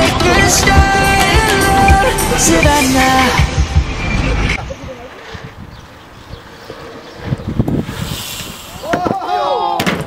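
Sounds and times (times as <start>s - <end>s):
wind: 0.0s - 10.0s
tyre noise on concrete: 6.5s - 10.0s
people shouting in alarm: 8.8s - 9.9s.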